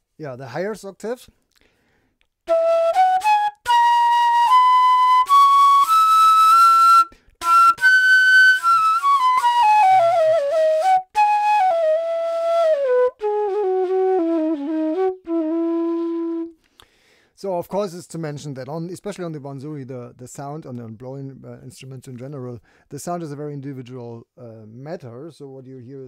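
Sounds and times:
player's short breaths: 1.6s - 2.2s, 16.6s - 17.4s
bamboo flute melody: 2.4s - 16.6s.

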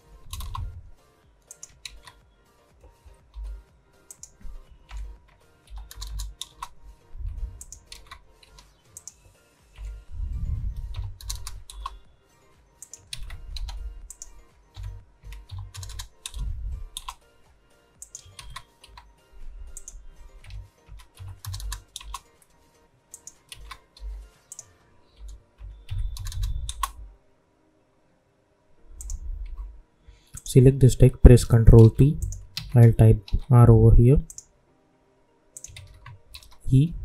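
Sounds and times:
keyboard and mouse clicking: 0.3s - 0.7s, 1.4s - 2.2s, 4.1s - 6.8s, 7.5s - 9.2s, 10.7s - 12.0s, 12.8s - 17.2s, 18.0s - 19.1s, 19.7s - 22.3s, 23.1s - 27.0s, 29.0s - 29.7s, 31.8s - 33.5s, 34.2s - 34.5s, 35.6s - 36.7s
dull low thumps: 0.5s - 1.0s, 7.2s - 7.6s, 10.1s - 11.2s, 16.4s - 17.0s, 29.0s - 29.8s.

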